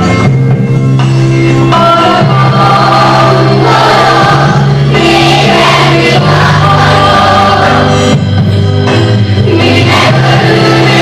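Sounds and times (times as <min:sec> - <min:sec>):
instrumental backing music: 0:00.0 - 0:11.0
group of voices singing: 0:01.6 - 0:08.2, 0:09.4 - 0:11.0.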